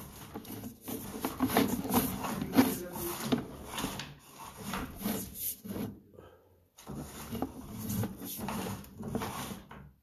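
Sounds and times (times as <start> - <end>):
cable scraping inside drain pipe: 0.0 - 10.0.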